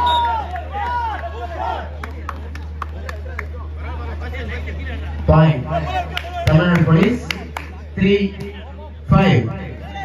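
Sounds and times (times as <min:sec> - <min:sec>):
people shouting and calling out: 0:05.3 - 0:10.0
hand claps: 0:06.1 - 0:07.8.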